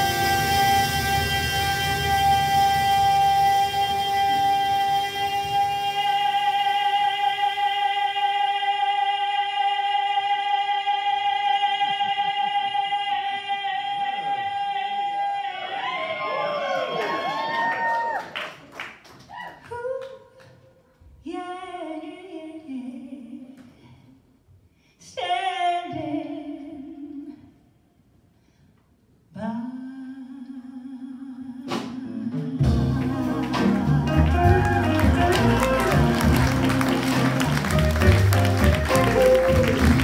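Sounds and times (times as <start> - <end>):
jazz band chord: 0.0 - 4.3, 32.6 - 40.0.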